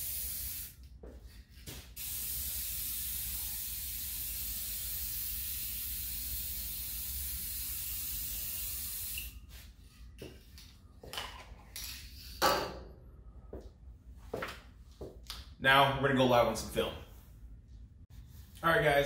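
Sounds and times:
aerosol can spraying: 0:00.0 - 0:00.8, 0:02.0 - 0:09.4.

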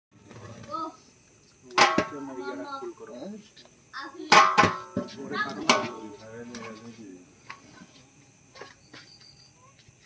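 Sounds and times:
men talking quietly: 0:00.2 - 0:03.9, 0:04.9 - 0:10.0.

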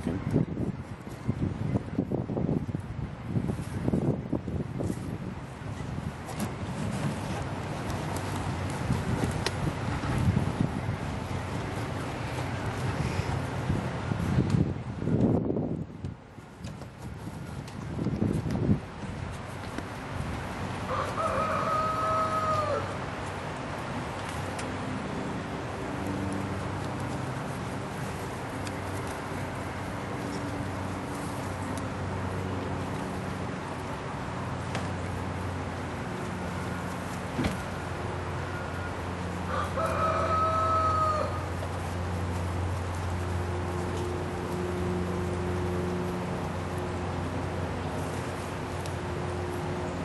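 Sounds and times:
rooster crowing: 0:20.9 - 0:23.0, 0:39.5 - 0:41.6.

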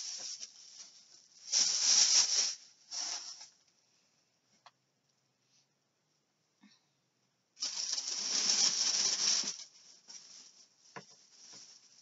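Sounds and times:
plastic bag rustling: 0:00.0 - 0:03.6, 0:07.6 - 0:12.0.

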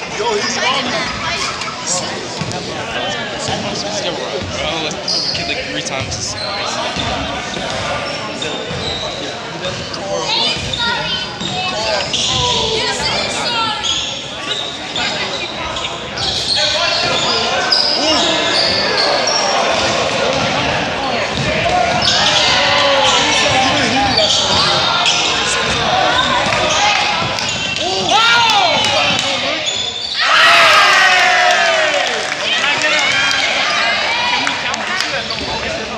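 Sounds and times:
voices echoing in a hall: 0:00.0 - 0:35.9.

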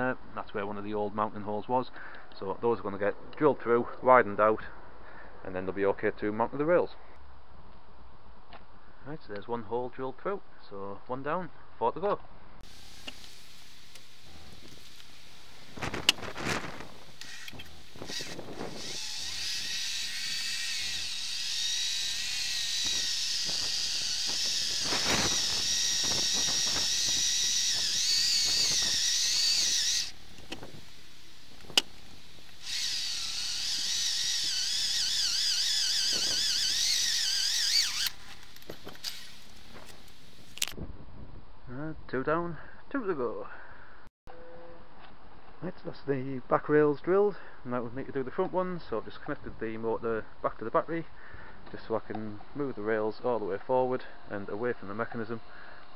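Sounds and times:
power drill whining: 0:15.6 - 0:30.7, 0:31.6 - 0:40.6.

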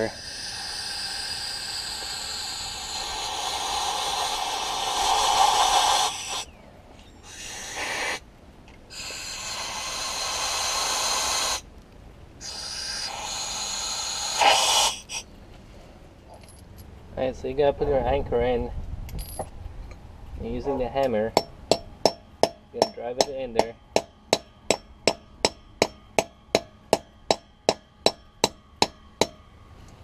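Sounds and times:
compressed air blow gun hissing: 0:00.0 - 0:06.5, 0:07.2 - 0:08.2, 0:08.9 - 0:11.7, 0:12.4 - 0:15.2.

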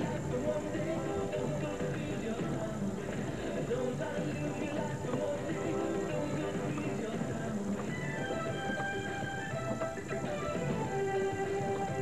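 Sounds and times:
music on a radio: 0:00.0 - 0:12.0.

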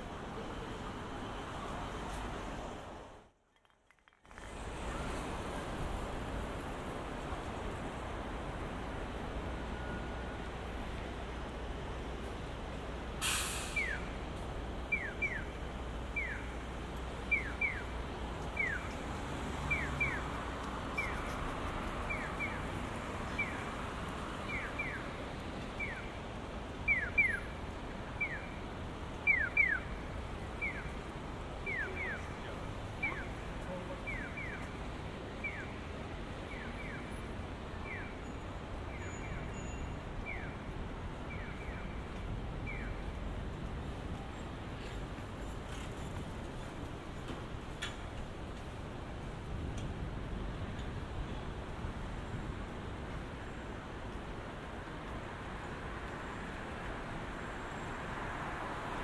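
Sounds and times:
street traffic noise: 0:00.0 - 0:59.0
short hiss: 0:13.2 - 0:13.9.

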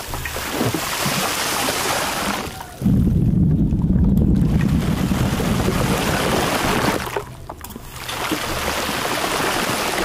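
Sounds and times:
loud low rumble: 0:02.6 - 0:07.5.

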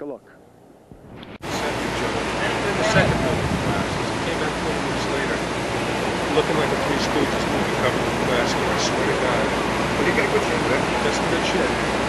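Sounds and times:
loud rushing street noise: 0:01.0 - 0:12.0
faint voices: 0:01.4 - 0:12.0.

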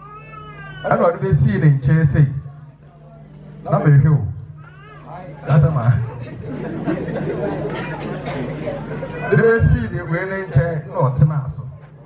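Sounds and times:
man speaking over public address: 0:00.7 - 0:02.7, 0:03.6 - 0:06.3, 0:09.1 - 0:12.0.

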